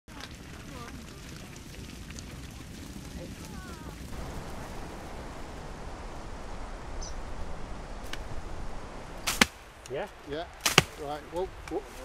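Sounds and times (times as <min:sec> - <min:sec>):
sheep running across grass: 0:00.1 - 0:09.2
blade chopping hedge stem: 0:09.3 - 0:09.6, 0:10.6 - 0:11.0.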